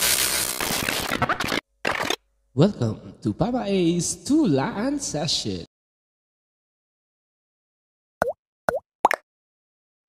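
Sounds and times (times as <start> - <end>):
cartoon bloop pops: 8.2 - 9.2.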